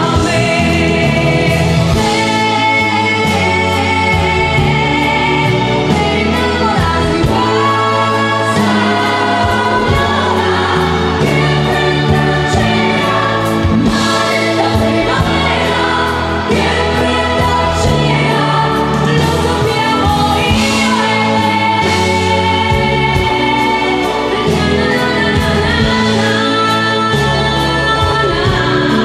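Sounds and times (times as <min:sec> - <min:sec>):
live band playing: 0:00.0 - 0:29.0
woman singing: 0:00.0 - 0:29.0.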